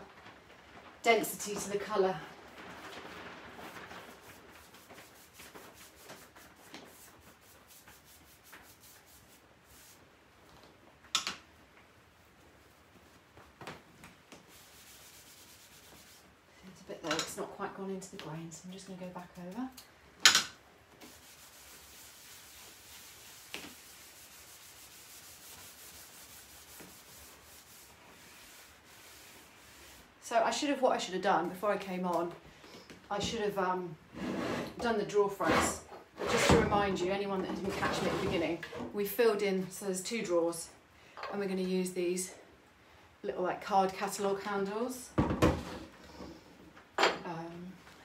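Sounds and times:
cloth rag rubbing on wood: 3.5s - 10.1s, 14.3s - 16.4s, 21.0s - 30.2s.

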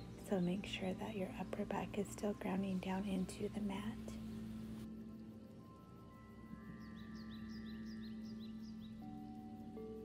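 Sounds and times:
ambient background music: 0.0s - 10.0s.

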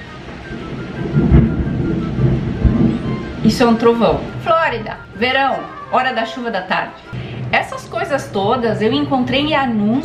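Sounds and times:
thunder rumbling: 0.0s - 10.0s.

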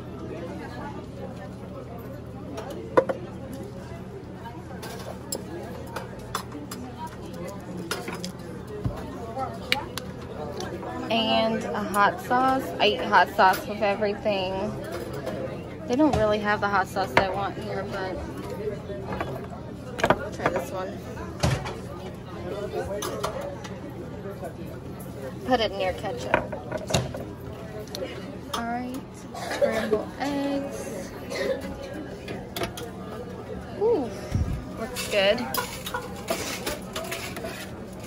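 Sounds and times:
indistinct chatter: 0.0s - 38.0s
dishes and cutlery clinking: 34.8s - 37.8s.

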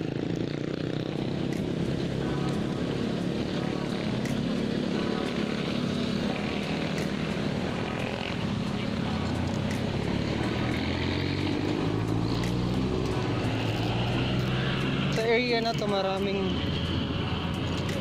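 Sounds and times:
motorcycles passing: 0.0s - 18.0s
truck engine drone: 0.0s - 18.0s
vehicles passing: 0.0s - 18.0s.

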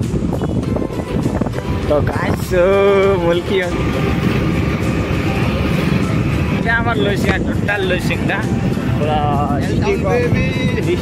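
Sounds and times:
road noise: 0.0s - 11.0s
rushing wind: 0.0s - 11.0s.

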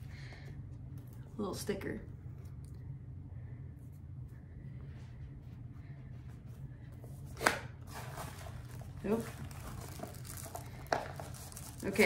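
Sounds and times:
paper crinkling: 7.8s - 12.0s.

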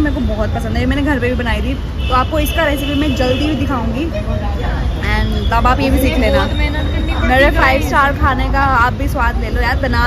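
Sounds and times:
woman talking: 5.0s - 10.0s.

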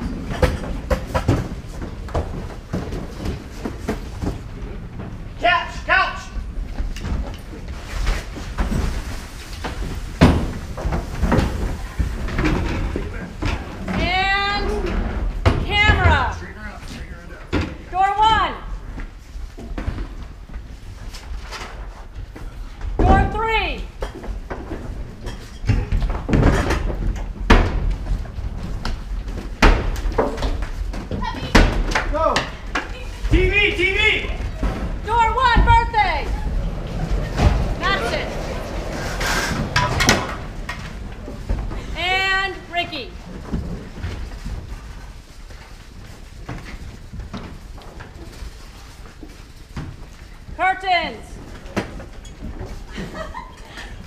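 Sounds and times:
door slamming: 34.5s - 40.8s.

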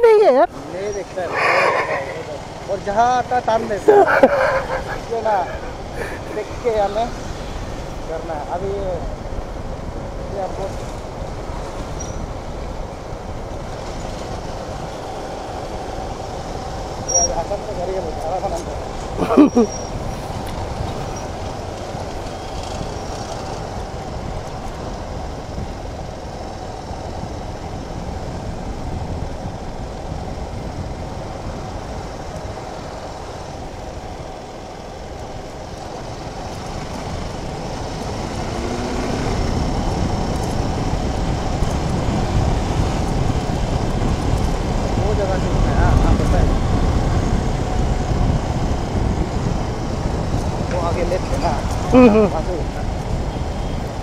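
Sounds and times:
wind and road noise: 0.0s - 54.0s.

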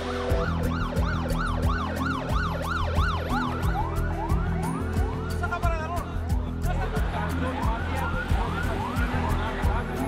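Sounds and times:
emergency vehicle siren: 0.0s - 5.5s, 8.0s - 10.0s.

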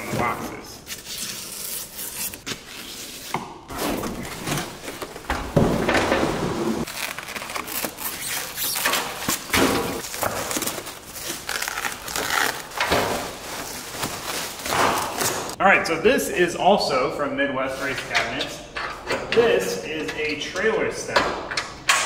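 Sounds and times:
cardboard and plastic rustling: 3.7s - 15.6s.

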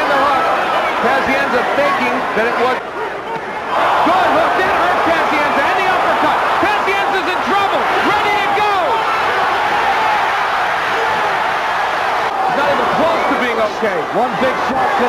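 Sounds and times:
crowd cheering and yelling: 0.0s - 15.0s.

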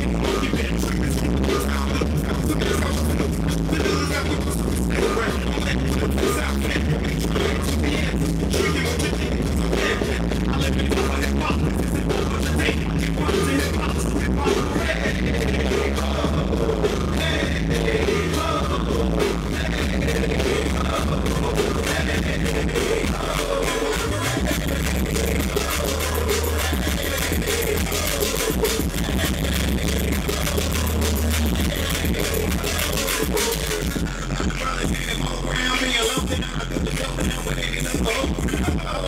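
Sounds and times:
dance music with heavy bass: 0.0s - 39.0s.

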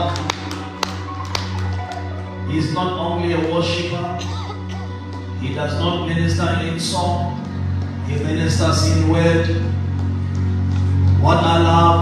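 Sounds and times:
low keyboard chord: 0.0s - 12.0s.

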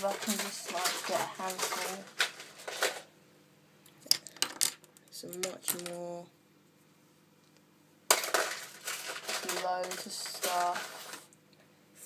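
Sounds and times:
plastic charms clattering: 0.0s - 3.1s, 8.1s - 11.3s.

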